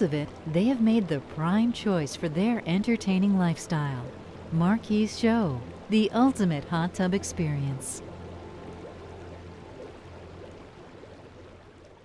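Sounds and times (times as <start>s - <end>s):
hot tub jets bubbling water: 0.0s - 12.0s.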